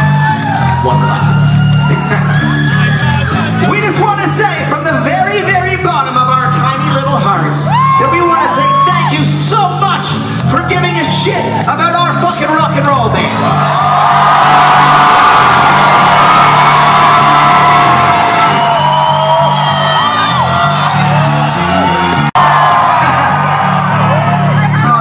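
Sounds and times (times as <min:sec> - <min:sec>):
bass line: 0:00.0 - 0:25.0.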